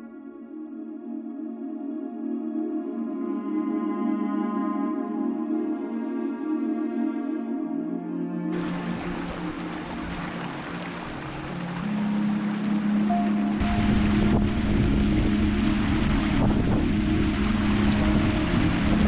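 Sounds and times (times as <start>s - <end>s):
stream tumbling over rocks: 8.5s - 19.0s
wind buffeting microphone: 13.6s - 19.0s.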